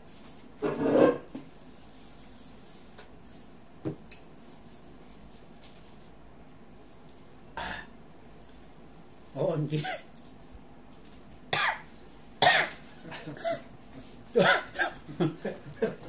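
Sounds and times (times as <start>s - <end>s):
man coughing: 12.4s - 13.7s, 14.4s - 15.1s.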